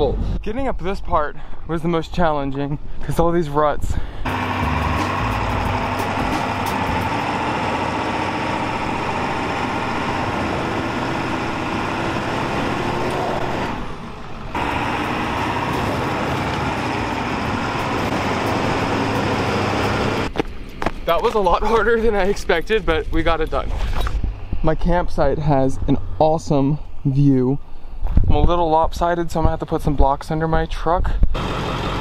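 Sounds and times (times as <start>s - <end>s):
truck engine under load: 4.2s - 21.0s, 31.3s - 32.0s.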